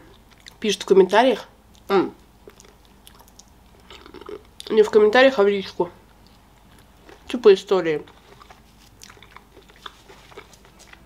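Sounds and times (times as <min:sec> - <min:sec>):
chewing crunchy food: 0:00.0 - 0:00.6, 0:01.7 - 0:04.8, 0:06.1 - 0:07.3, 0:08.0 - 0:11.0.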